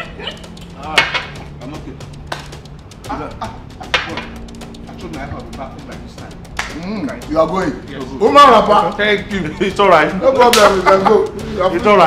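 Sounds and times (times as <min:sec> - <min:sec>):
soft background music: 0:00.0 - 0:12.0
men talking: 0:00.6 - 0:12.0.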